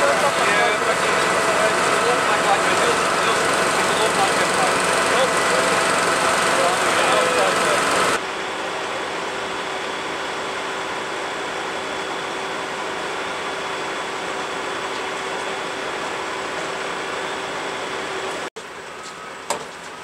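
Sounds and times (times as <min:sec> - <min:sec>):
vehicle engines idling: 0:00.0 - 0:09.5.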